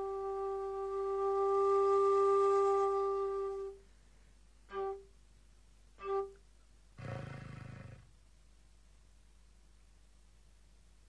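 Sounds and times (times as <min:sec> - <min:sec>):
buzzing low slide flute note: 0:00.0 - 0:03.8, 0:04.7 - 0:05.1.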